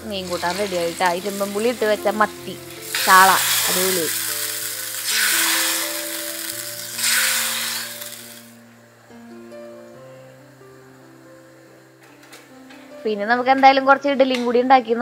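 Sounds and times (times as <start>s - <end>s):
hot oil sizzling: 0.0s - 8.7s
background music with held notes: 0.0s - 15.0s.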